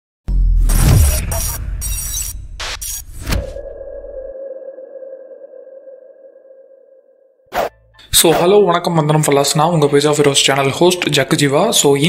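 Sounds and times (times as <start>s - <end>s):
sustained electronic tone: 0.7s - 8.1s.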